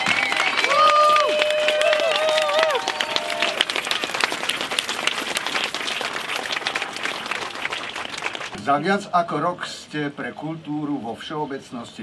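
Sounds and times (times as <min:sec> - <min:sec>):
crowd applauding: 0:00.0 - 0:08.6.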